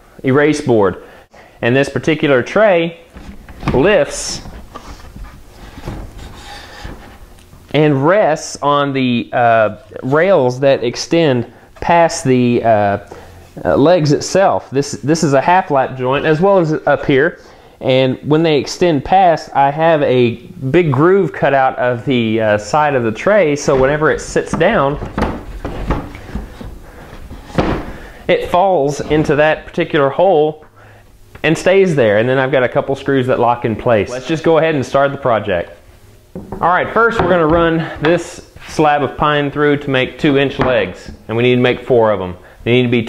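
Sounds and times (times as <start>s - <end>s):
wood rubbing against wood: 3.1s - 7.6s, 21.5s - 29.8s.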